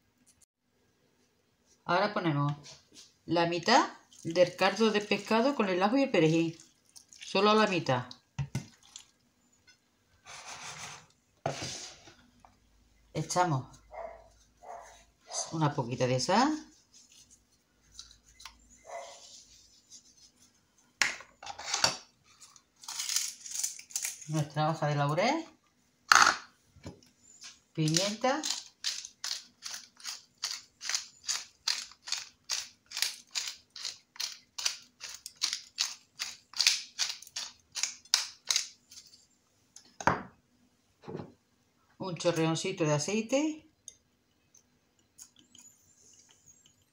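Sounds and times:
hand scraping potatoes in glass dish: 10.2 - 12.1
pepper mill grinding: 21.6 - 24.6, 27.8 - 39.2.

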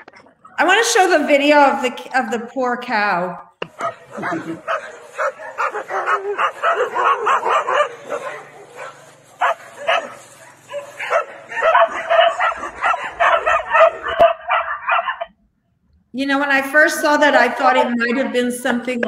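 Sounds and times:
dogs barking and yipping: 3.7 - 15.4, 17.3 - 18.8.

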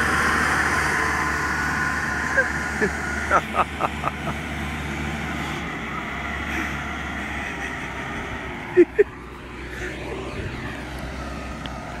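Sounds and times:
engine running steadily: 0.0 - 12.0.

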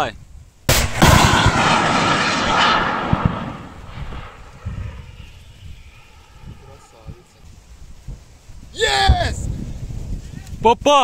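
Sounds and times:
rocket motor rushing away: 0.9 - 6.9.

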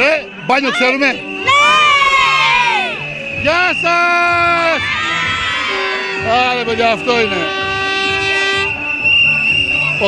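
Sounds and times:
shrill whistle tone: 0.0 - 6.2, 7.0 - 10.0
toy horn note: 7.1 - 9.0.

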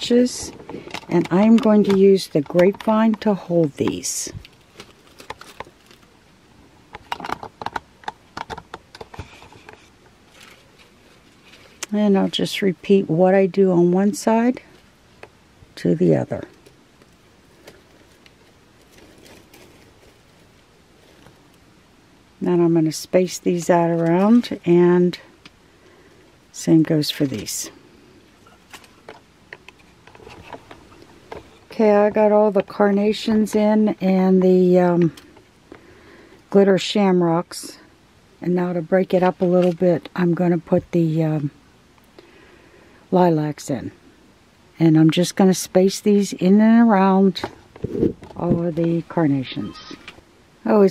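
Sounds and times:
light handling clicks and rustles: 0.1 - 6.1, 23.7 - 25.6, 28.4 - 35.8
twigs clicking and crackling: 0.6 - 6.1, 16.5 - 21.6.

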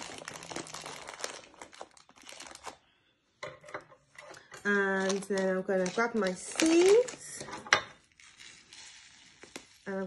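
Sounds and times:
plastic food packet crinkling: 0.0 - 3.0, 4.3 - 10.0.

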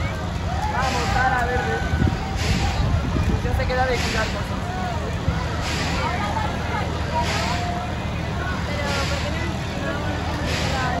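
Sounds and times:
crowd chatter: 0.0 - 11.0
ride machine hum: 0.0 - 11.0.

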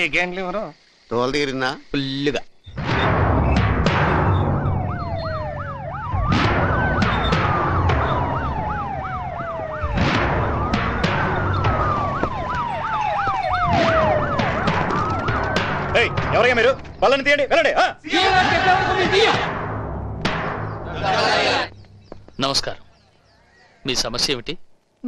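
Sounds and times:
sharp hits: 2.7 - 17.4, 18.2 - 22.8
sirens wailing and yelping: 4.2 - 17.0, 20.9 - 21.7.

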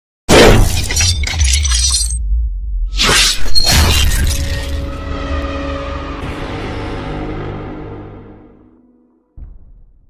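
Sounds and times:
glass shattering crash: 0.3 - 2.2, 3.6 - 4.8
deep low rumble: 1.9 - 3.0.

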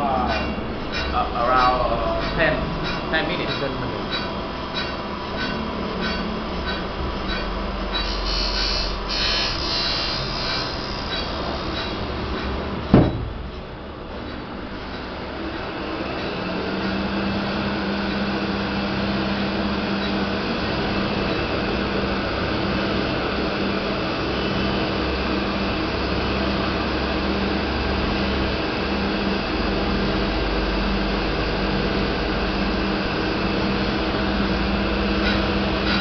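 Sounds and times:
grinding machine whirring hiss: 0.0 - 36.0.

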